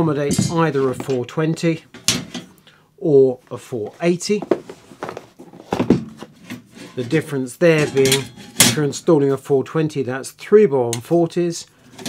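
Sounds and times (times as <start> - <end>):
cardboard boxes rustling: 4.3 - 6.4.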